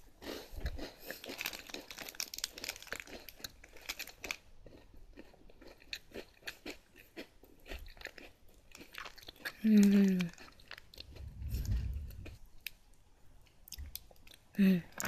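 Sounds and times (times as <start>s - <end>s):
cookie crunching chewing: 0.0s - 12.7s.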